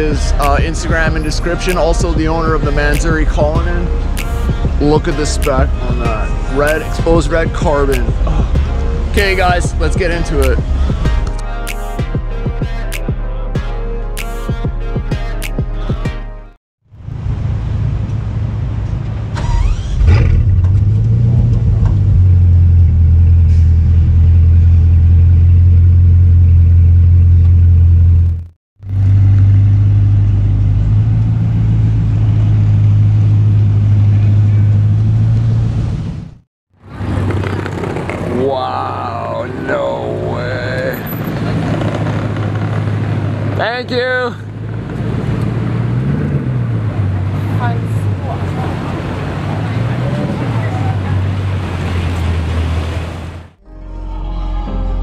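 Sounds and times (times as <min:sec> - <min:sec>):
street sound with voices: 0:00.0 - 0:11.8, 0:33.8 - 0:35.4, 0:36.8 - 0:53.3
car engine starting and idling: 0:16.9 - 0:54.0.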